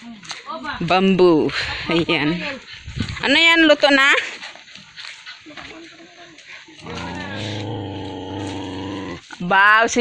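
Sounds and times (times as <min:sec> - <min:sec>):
dog growling: 0:06.8 - 0:09.2.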